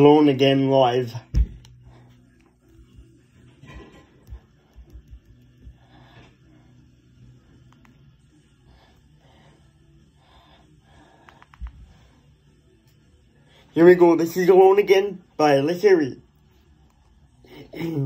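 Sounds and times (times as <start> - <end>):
soft breathing: 1.7 - 3.4, 4.2 - 13.8.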